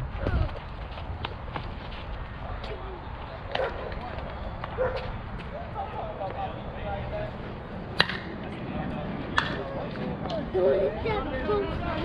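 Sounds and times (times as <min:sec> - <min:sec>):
distant players' voices: 0:00.0 - 0:12.0
bat striking softball: 0:08.0 - 0:08.3, 0:09.4 - 0:09.6.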